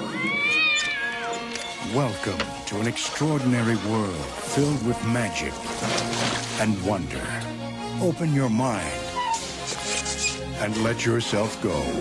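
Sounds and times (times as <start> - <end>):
cat meowing: 0.0 - 1.5
quiet background music: 0.0 - 12.0.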